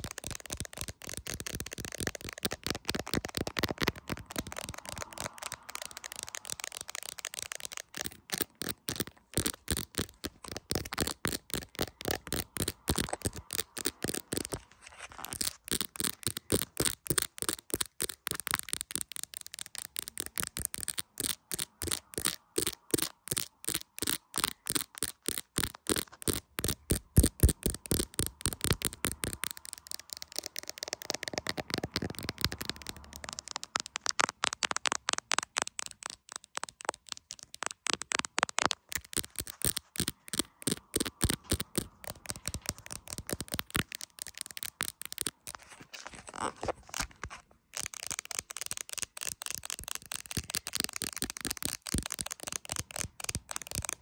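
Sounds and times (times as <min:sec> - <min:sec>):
nails tapping on phone case: 0:00.0 - 0:14.6, 0:15.2 - 0:45.5, 0:47.8 - 0:54.0.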